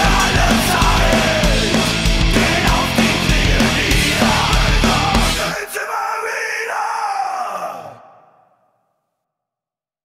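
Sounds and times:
drawn-out falling vocal sound: 0:00.0 - 0:08.6.

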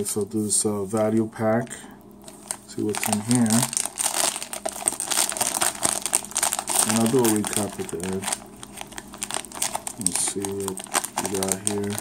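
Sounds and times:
plastic wrapper crinkling: 0:00.8 - 0:12.0.

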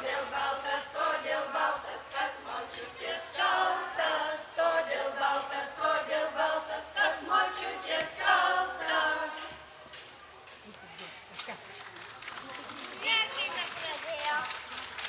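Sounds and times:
women and children singing: 0:00.0 - 0:09.8.

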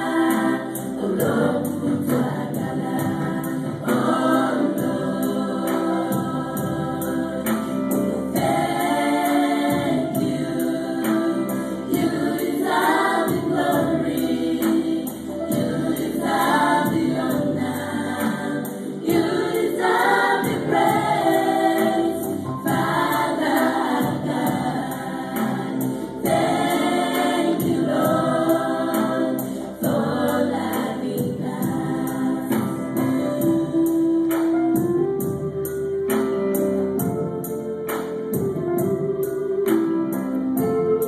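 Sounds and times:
gospel choir singing: 0:00.0 - 0:41.0
steady percussion beat: 0:00.0 - 0:41.0.

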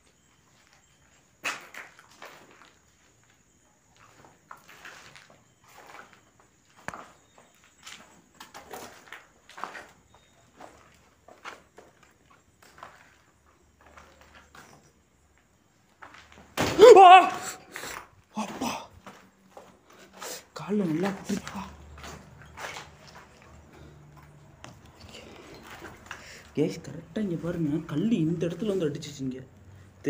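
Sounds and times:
footsteps walking: 0:00.5 - 0:14.8, 0:17.8 - 0:29.2.

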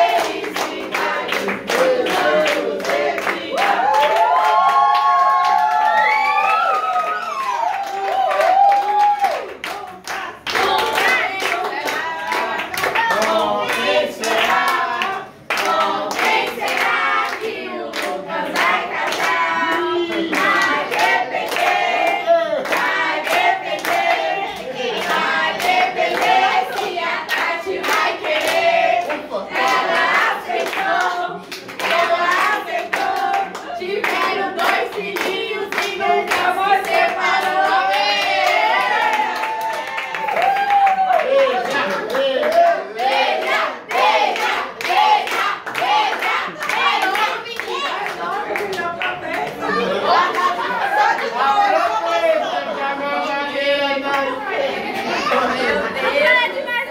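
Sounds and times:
group of people singing: 0:00.0 - 0:04.8, 0:09.6 - 0:40.5, 0:41.6 - 0:56.9
people clapping: 0:00.0 - 0:52.7, 0:53.3 - 0:56.9
hands clapping: 0:22.6 - 0:49.7.

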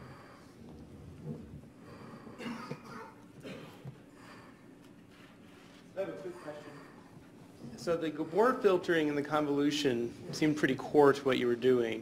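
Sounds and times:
faint audience coughing: 0:02.3 - 0:04.1.

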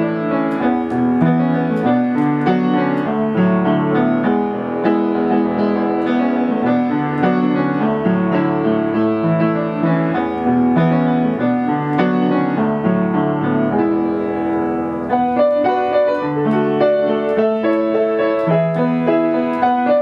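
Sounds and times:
upright piano playing: 0:00.0 - 0:20.0.

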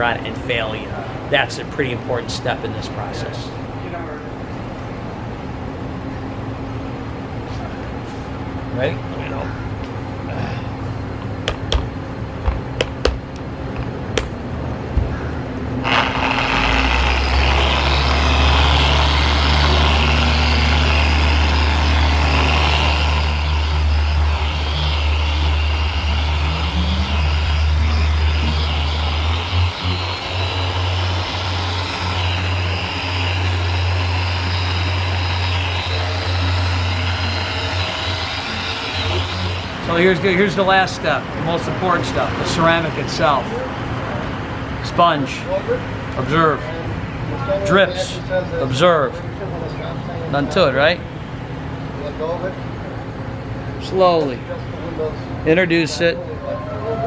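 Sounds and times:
electric rotary polisher: 0:15.8 - 0:40.4.

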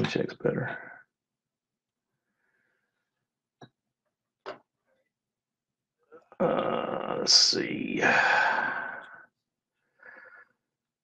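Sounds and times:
man sighing: 0:08.0 - 0:09.2.

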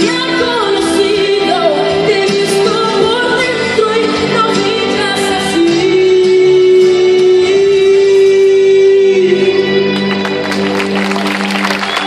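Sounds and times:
backing track: 0:00.0 - 0:12.0.

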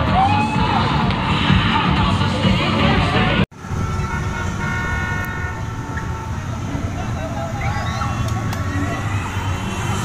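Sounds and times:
crowd din: 0:00.0 - 0:10.0
street traffic: 0:00.0 - 0:10.0
car horn long note: 0:03.7 - 0:05.7.

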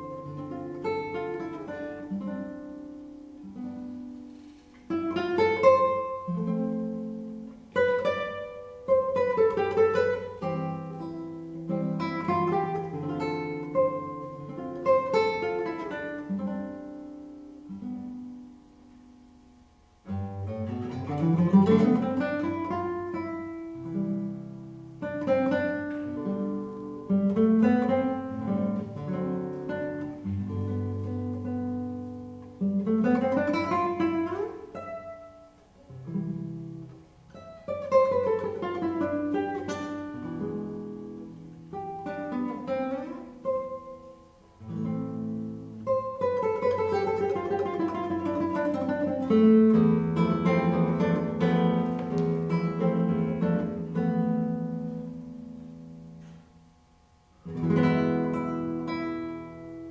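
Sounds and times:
fingerstyle classical guitar: 0:00.0 - 0:59.9.

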